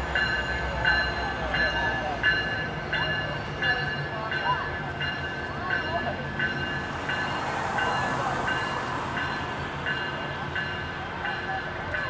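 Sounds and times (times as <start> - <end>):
diesel locomotive engine hum: 0.0 - 12.0
faint crowd voices: 0.0 - 12.0
locomotive bell ringing: 0.0 - 12.0.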